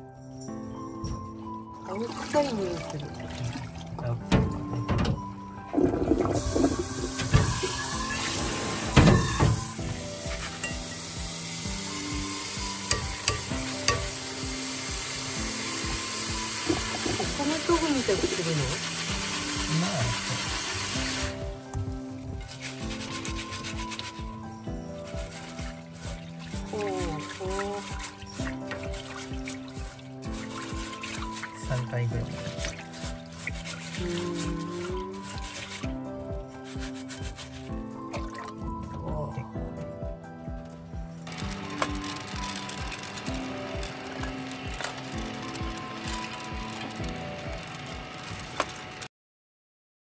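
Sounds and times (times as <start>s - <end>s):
soft background music: 0.0s - 49.1s
coffee roaster whirring: 6.4s - 21.5s, 41.3s - 49.1s
wet beans rubbed in mesh strainer: 22.4s - 38.2s
coffee beans tumbling: 41.3s - 48.8s.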